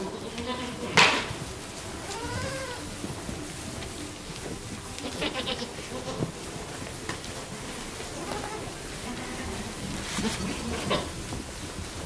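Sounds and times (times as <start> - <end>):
goats bleating: 0.0 - 11.4.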